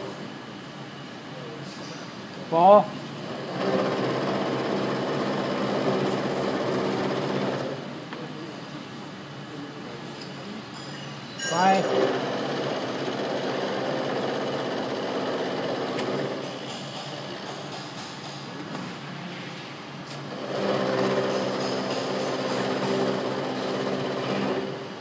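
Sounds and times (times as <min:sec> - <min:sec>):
milling machine humming: 0:03.3 - 0:07.9, 0:11.8 - 0:17.6, 0:20.3 - 0:25.0.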